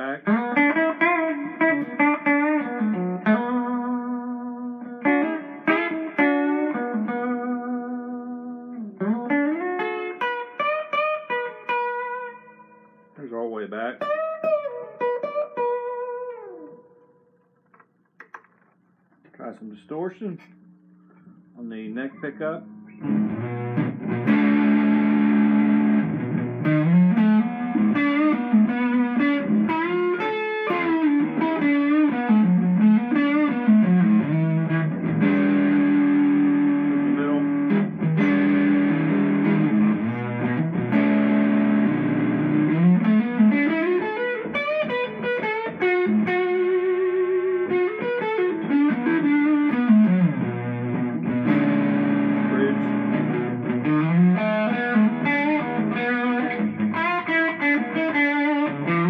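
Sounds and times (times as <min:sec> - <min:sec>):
distorted electric guitar: 0:00.0 - 0:18.8, 0:20.3 - 0:59.0.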